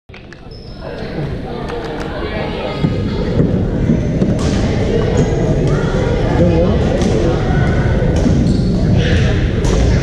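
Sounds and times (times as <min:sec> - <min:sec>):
people's voices echoing: 0:00.3 - 0:10.0.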